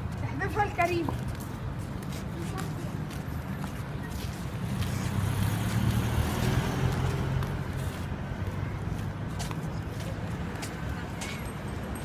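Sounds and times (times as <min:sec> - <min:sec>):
vehicle engine rumbling: 0:01.3 - 0:12.0.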